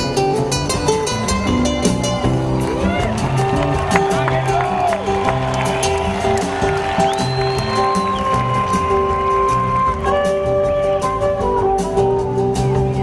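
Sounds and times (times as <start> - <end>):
acoustic guitar: 0.0 - 13.0
upright bass notes: 0.0 - 13.0.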